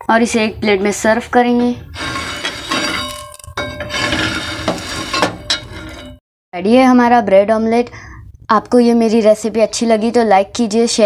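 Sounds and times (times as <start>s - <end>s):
metal spatula scraping griddle: 1.8s - 6.2s.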